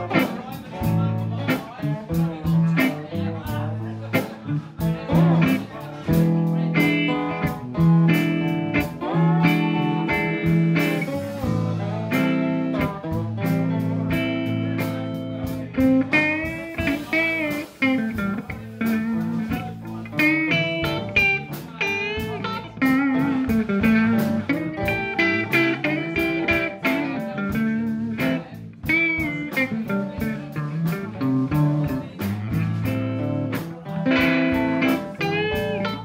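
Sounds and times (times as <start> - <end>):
blues band playing: 0.0 - 36.0
guitar lead with bent notes: 0.0 - 36.0
steady drum beat: 0.0 - 36.0.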